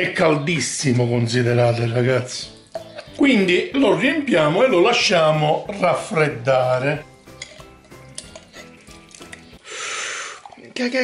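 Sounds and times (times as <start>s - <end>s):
metal ladle clinking on glass jar: 7.2s - 9.4s.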